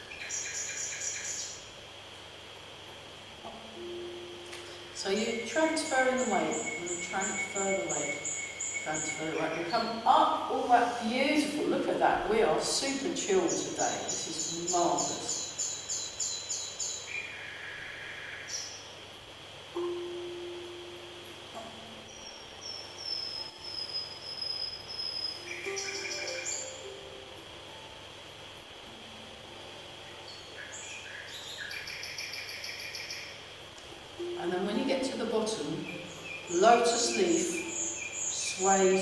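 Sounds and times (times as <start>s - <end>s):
nightingale song: 0.0s - 39.0s.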